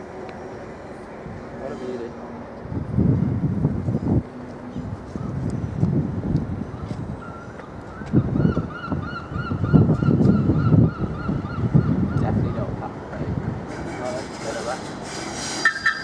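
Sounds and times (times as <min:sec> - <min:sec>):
bird calling repeated notes: 0:07.2 - 0:12.6.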